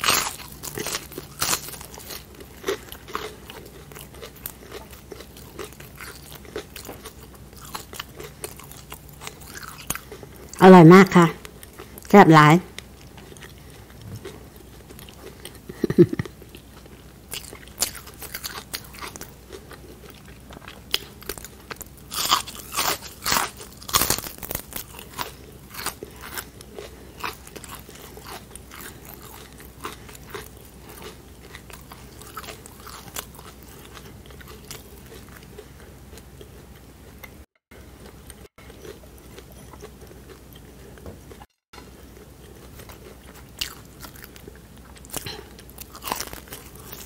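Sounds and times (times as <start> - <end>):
crunchy chewing: 0.0 - 10.6, 12.7 - 47.0.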